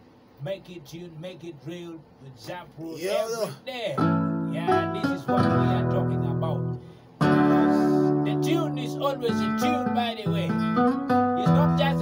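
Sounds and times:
electronic keyboard chords: 4.0 - 12.0.

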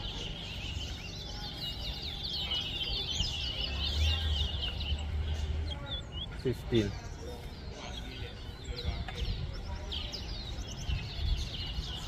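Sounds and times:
finch twittering song: 0.0 - 12.0.

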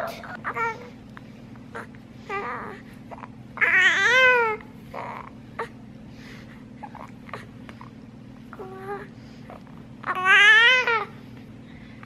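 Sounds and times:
baby crying and whimpering: 0.0 - 1.0, 1.7 - 5.8, 8.6 - 11.2.

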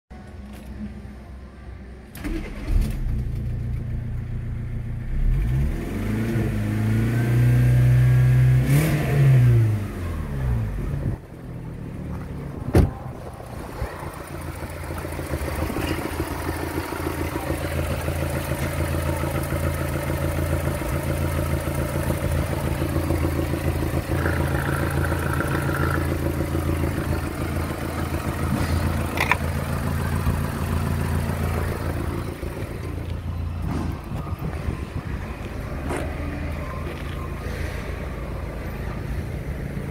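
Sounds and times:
car engine revving and idling: 2.2 - 39.9.

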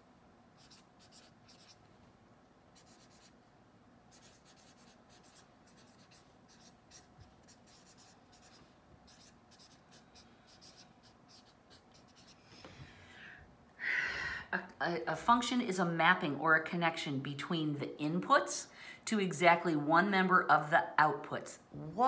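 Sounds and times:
felt-tip pen scratching on paper: 0.6 - 1.8, 2.8 - 3.4, 4.1 - 12.4.

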